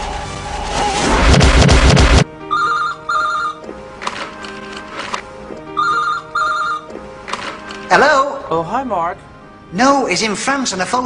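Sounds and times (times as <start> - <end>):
soft background music: 1.6 - 11.0
telephone double ring: 5.8 - 6.9.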